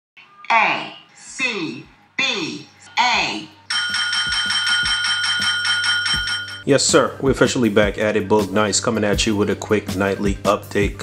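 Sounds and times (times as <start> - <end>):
desk bell dinging: 3.7 - 6.7.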